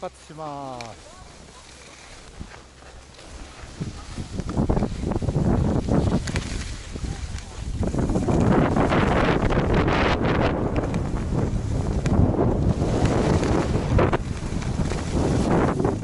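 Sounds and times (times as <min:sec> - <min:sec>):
skis scraping on snow: 0:00.0 - 0:16.0
wind buffeting microphone: 0:02.1 - 0:16.0.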